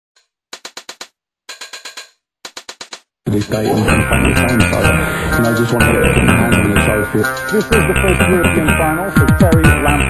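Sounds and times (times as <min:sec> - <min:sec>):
quick percussive hits: 0:00.5 - 0:05.9.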